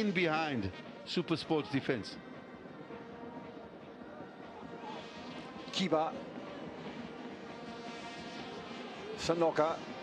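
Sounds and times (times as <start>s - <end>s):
stadium crowd ambience: 0.0s - 10.0s.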